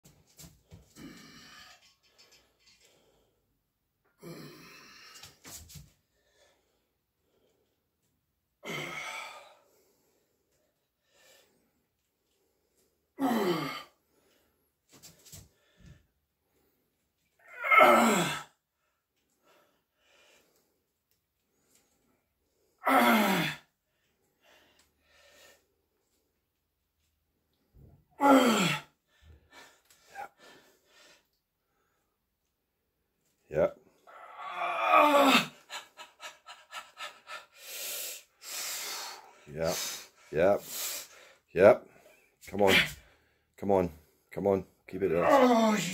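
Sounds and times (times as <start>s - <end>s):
man sighing with effort: 4.2s - 5.2s, 8.6s - 9.6s, 13.2s - 13.9s, 17.6s - 18.5s, 22.8s - 23.7s, 28.2s - 28.9s, 34.1s - 36.1s.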